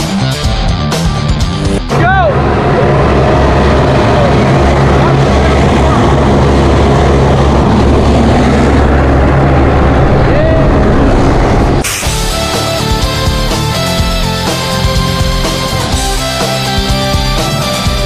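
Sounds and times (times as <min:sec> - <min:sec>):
rock music: 0:00.0 - 0:06.4, 0:11.8 - 0:18.0
propeller aircraft engine roar: 0:00.0 - 0:18.0.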